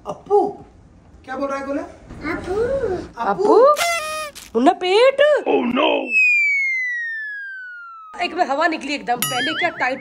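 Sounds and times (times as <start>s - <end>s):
comic descending whistle: 6.1s - 8.4s.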